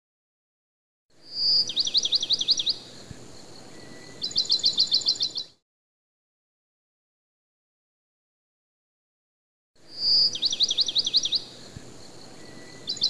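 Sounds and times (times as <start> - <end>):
bird song with trills: 1.2 - 5.6, 9.8 - 13.0.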